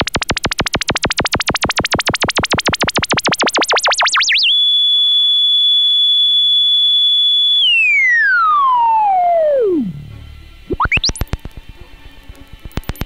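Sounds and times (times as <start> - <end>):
wobbling synthesizer tone: 0.0 - 4.5, 7.6 - 10.1, 10.7 - 11.3.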